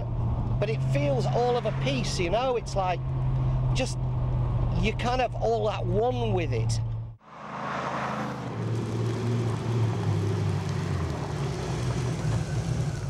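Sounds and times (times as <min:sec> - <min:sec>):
car engine running: 0:00.0 - 0:07.2, 0:08.5 - 0:13.0.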